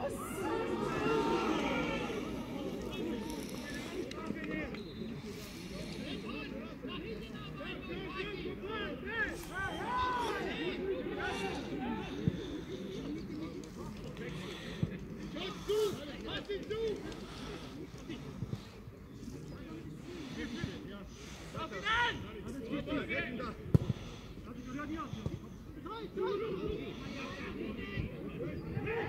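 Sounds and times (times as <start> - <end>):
voices calling and talking: 0.0 - 29.0.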